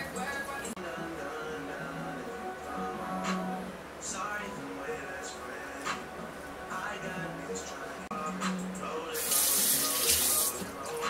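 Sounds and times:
background music: 0:00.0 - 0:11.0
water running from a tap: 0:09.2 - 0:10.6.

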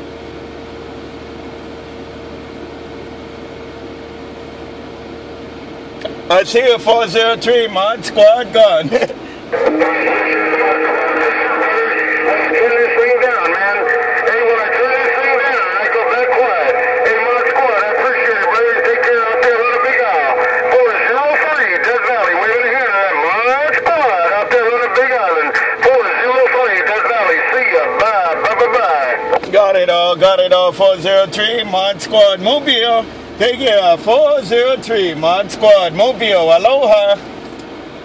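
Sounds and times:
garbled radio voices: 0:06.0 - 0:37.2
warbling sliding radio tones: 0:09.5 - 0:29.4.

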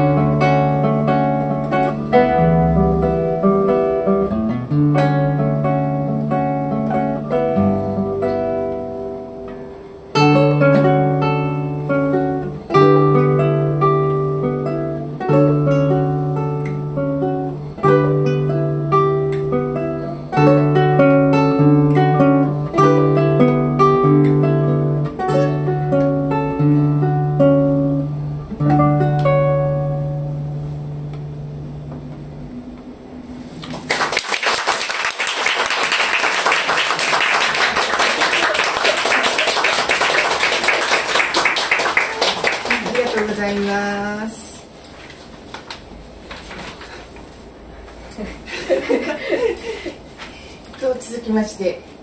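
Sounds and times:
classical guitar duet: 0:00.0 - 0:34.2
audience applauding: 0:33.6 - 0:43.9
short laugh: 0:48.1 - 0:50.5.

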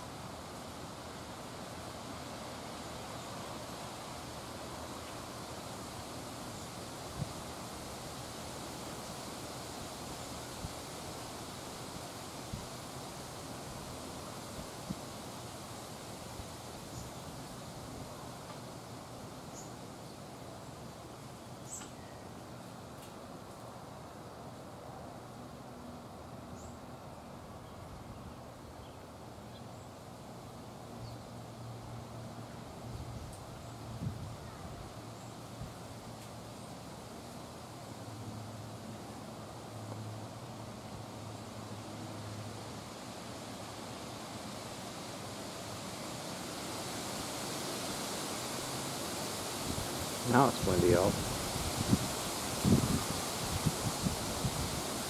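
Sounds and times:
steady rushing hiss: 0:00.0 - 0:55.0.

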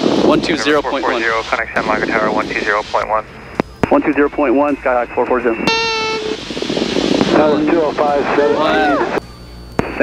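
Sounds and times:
radio static hiss: 0:00.0 - 0:09.2, 0:09.8 - 0:10.0
low hum: 0:00.0 - 0:10.0
indistinct voice over radio: 0:00.5 - 0:03.2
steady beep: 0:05.1 - 0:06.4.

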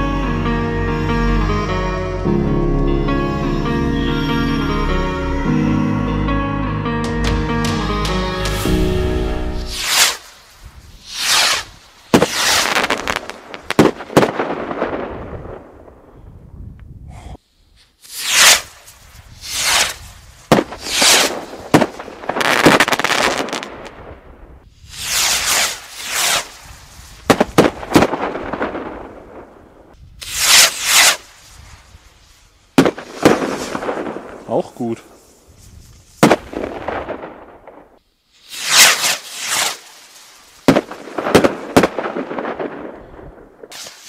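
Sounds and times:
firework rocket whoosh: 0:09.5 - 0:16.4, 0:18.0 - 0:34.5, 0:38.3 - 0:44.0
firework bang: 0:11.0 - 0:15.9, 0:19.4 - 0:24.3, 0:24.9 - 0:29.6, 0:32.8 - 0:34.5, 0:36.2 - 0:37.9, 0:40.6 - 0:44.0.

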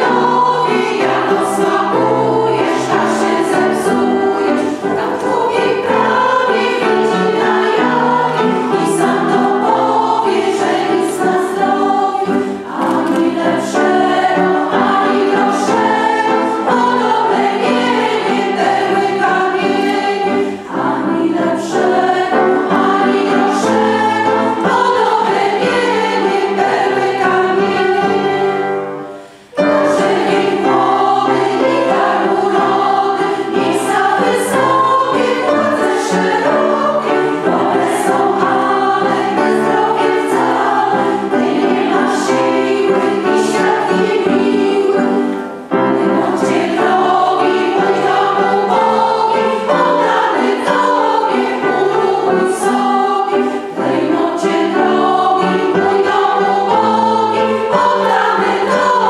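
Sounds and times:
women singing together: 0:00.0 - 0:29.0, 0:29.6 - 0:59.0.

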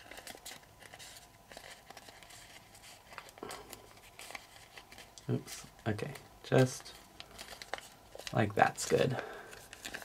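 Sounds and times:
paper crinkling as it is folded: 0:00.0 - 0:10.0.

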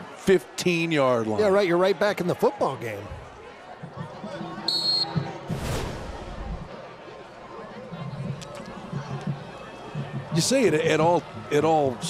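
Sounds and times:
referee's whistle blast: 0:04.7 - 0:05.2.

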